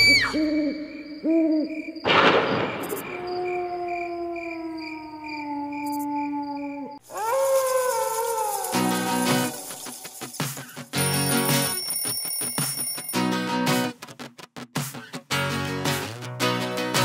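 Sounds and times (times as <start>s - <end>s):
owl hooting: 0.0s - 2.0s
crickets chirping: 0.0s - 12.4s
wolf howl: 3.0s - 10.2s
long slowly falling call: 3.0s - 10.6s.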